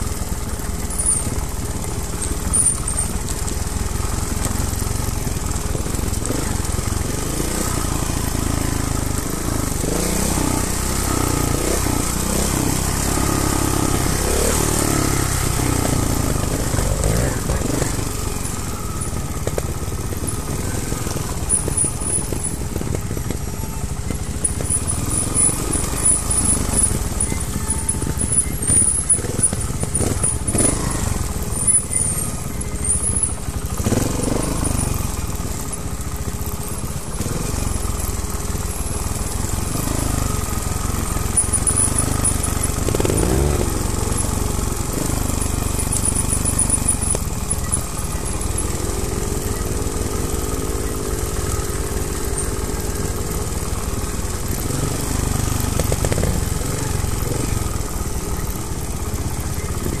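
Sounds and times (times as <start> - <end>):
motorcycle engine rumbling: 0.0 - 60.0.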